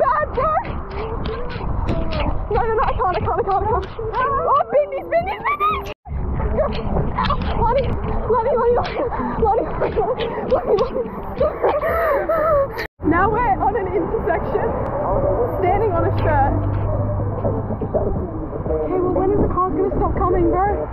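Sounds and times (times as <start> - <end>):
road traffic rumble: 5.6 - 20.9
women shouting and gasping: 8.9 - 12.9.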